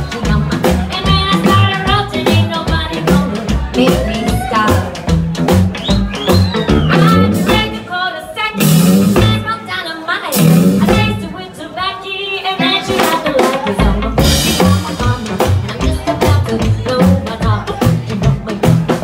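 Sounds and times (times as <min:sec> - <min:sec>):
woman singing: 0:00.0 - 0:05.0, 0:06.8 - 0:19.0
drum kit beat: 0:00.0 - 0:11.5, 0:12.6 - 0:19.0
electric guitar: 0:00.0 - 0:19.0.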